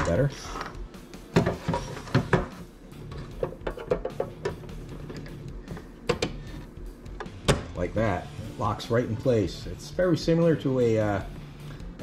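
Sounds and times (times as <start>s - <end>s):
plastic clicks and knocks: 3.4s - 5.3s.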